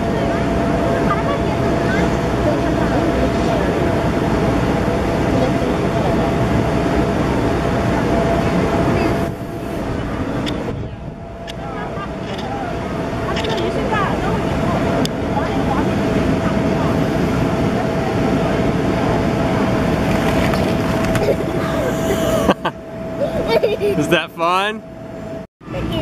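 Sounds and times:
voices chattering: 0.0 - 24.8
electric air blower droning: 0.0 - 25.4.

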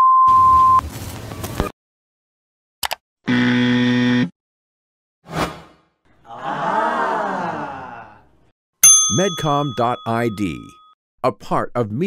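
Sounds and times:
electronic buzzer: 3.3 - 4.3.

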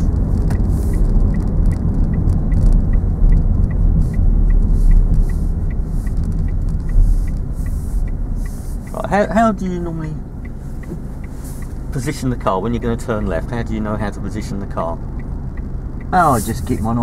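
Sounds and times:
car engine and road rumble: 0.0 - 17.0
turn indicator ticking: 0.0 - 17.0.

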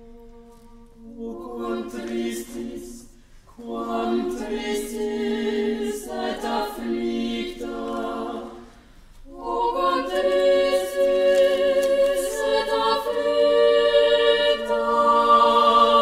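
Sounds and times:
choir singing held chords: 0.0 - 16.0.

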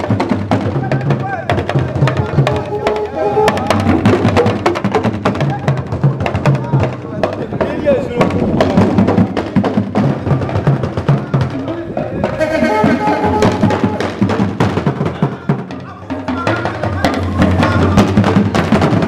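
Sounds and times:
voices singing or calling: 0.0 - 18.8
talking drums and bass drums: 0.0 - 19.0.

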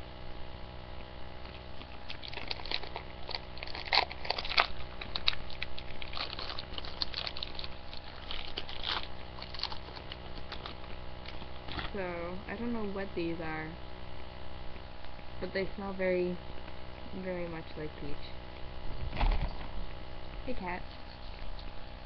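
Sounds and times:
candy packet crinkling and tearing: 1.8 - 11.9.

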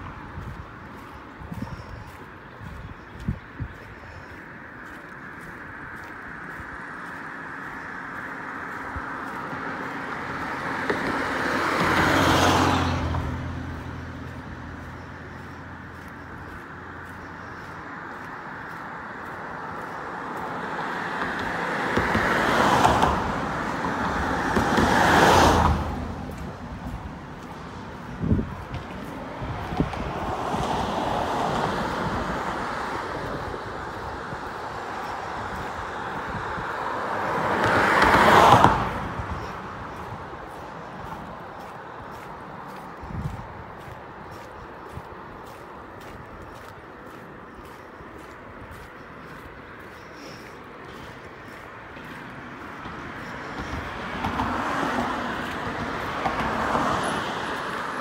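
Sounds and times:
cars passing by: 0.0 - 58.0.

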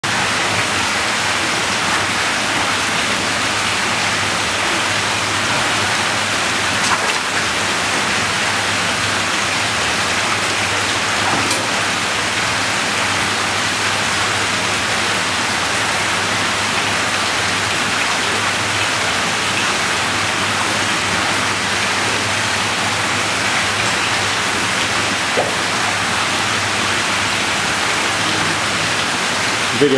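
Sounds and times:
running splashing water: 0.1 - 29.9.

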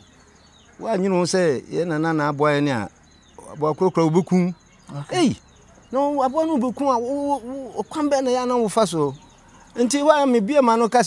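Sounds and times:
crickets chirring: 0.0 - 11.0
man speaking: 0.8 - 9.2, 9.8 - 11.0.

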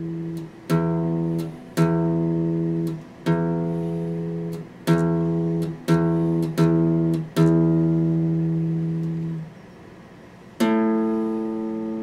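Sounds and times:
acoustic guitar chord strum: 0.0 - 9.5, 10.6 - 12.0.

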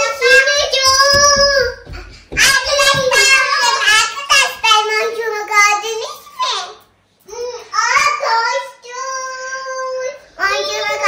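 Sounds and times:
little girl singing: 0.0 - 5.4.

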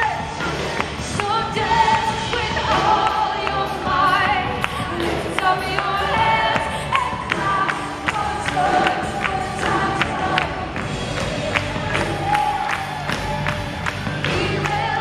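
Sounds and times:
band and crowd singing: 0.0 - 15.0.

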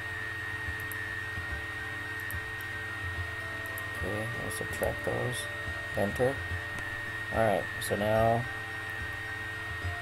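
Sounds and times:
high whine: 0.0 - 10.0
steady hum and hiss: 0.0 - 10.0
computer mouse clicks: 0.7 - 1.0, 2.2 - 2.7.

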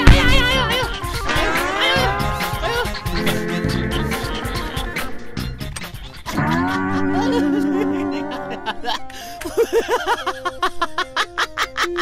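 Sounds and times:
man wailing comically: 0.0 - 5.4, 6.3 - 9.0.

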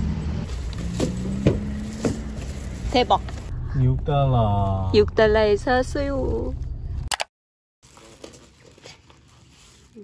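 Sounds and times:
car engines rumbling: 0.0 - 7.1.

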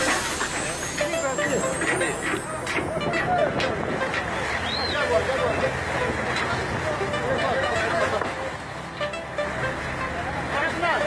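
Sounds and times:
boat machinery running: 0.0 - 11.0.

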